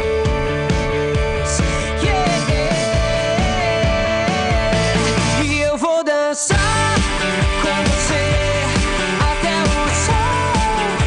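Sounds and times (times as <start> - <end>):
rock band playing: 0.0 - 5.7, 6.5 - 11.0
man singing: 0.0 - 11.0.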